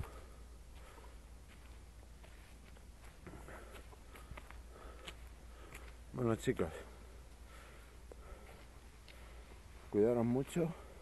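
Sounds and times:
soft rustling: 0.0s - 6.0s
footsteps on dirt path: 0.0s - 6.1s.

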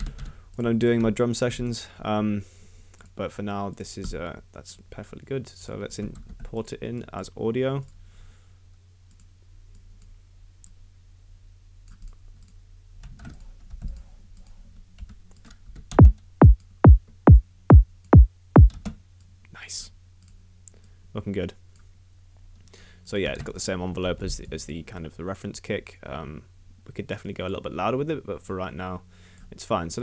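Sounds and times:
synthesized kick drum hits: 16.0s - 18.8s.

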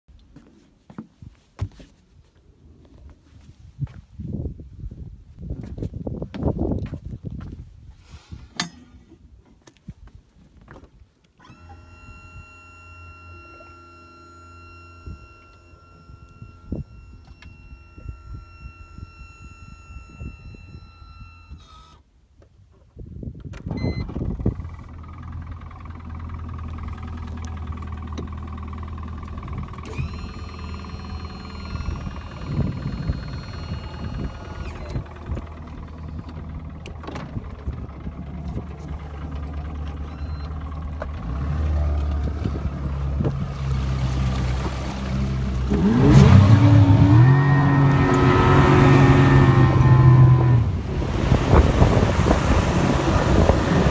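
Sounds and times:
outboard engine idling: 11.4s - 21.6s, 24.0s - 53.9s.

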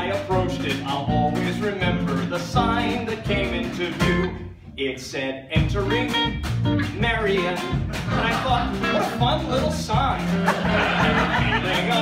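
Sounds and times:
plucked upright bass: 0.0s - 12.0s
person singing: 7.1s - 10.0s, 11.0s - 12.0s.

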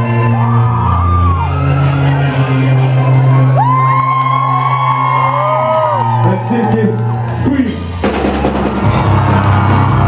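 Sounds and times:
crowd cheering and whooping: 0.0s - 10.0s.

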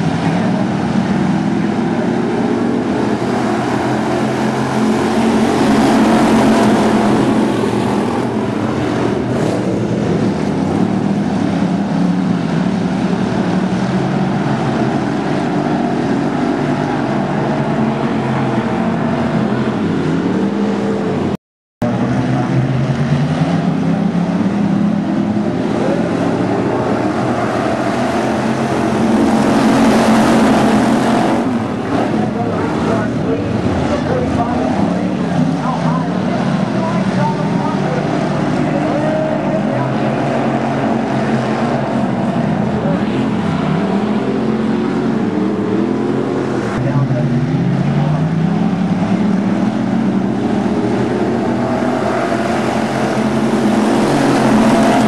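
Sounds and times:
race car engines passing: 0.0s - 55.0s.

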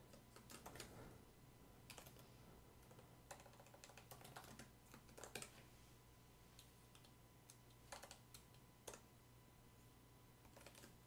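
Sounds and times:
faint typing on keyboard: 0.0s - 1.2s, 1.8s - 5.7s, 6.5s - 9.1s, 10.4s - 11.0s.

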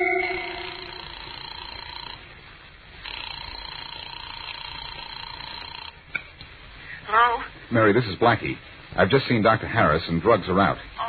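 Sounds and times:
organ music: 0.0s - 1.3s
telephone ringing: 0.0s - 2.2s.

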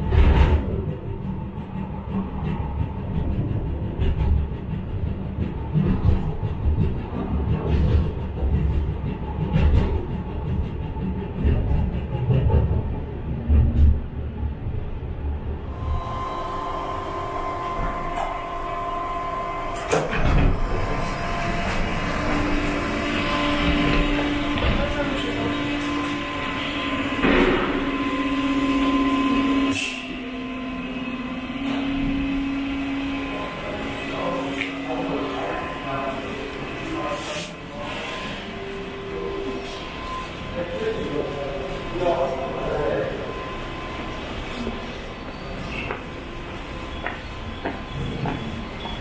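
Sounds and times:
funicular car rumbling on rails: 0.0s - 49.0s.

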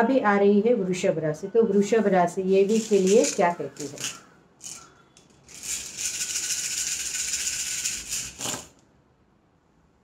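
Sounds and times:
shells clattering on table: 2.7s - 8.8s
shells rattling in hands: 2.7s - 8.8s.

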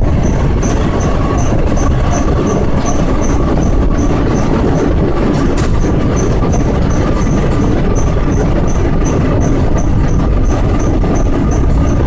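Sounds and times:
train wheels rumbling on track: 0.0s - 12.0s.

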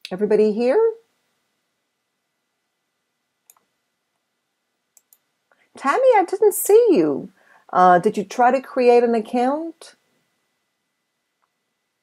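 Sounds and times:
woman's voice: 0.0s - 1.0s, 5.8s - 10.0s.

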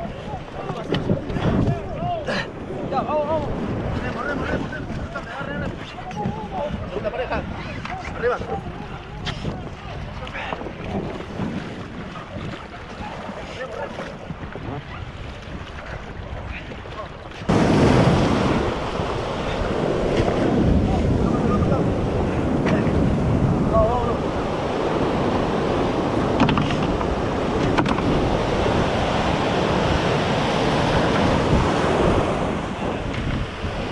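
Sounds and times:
breaking surf: 0.0s - 33.9s
wind buffeting microphone: 0.0s - 33.9s.

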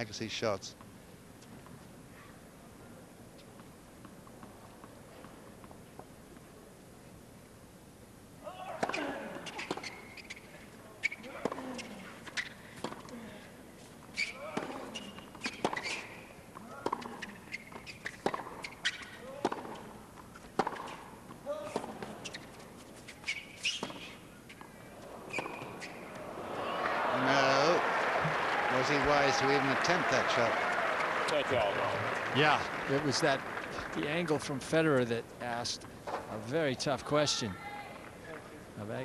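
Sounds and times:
tennis ball struck with rackets: 18.1s - 19.9s, 20.5s - 22.2s
crowd applause: 26.1s - 34.7s.

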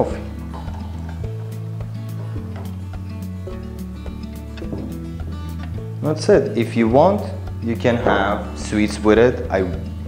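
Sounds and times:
background music with light beat: 0.0s - 10.0s.

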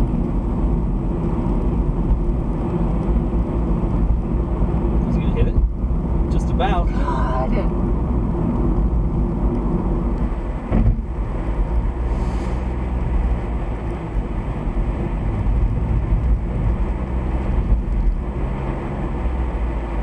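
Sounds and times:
road and engine rumble in car: 0.0s - 20.0s.

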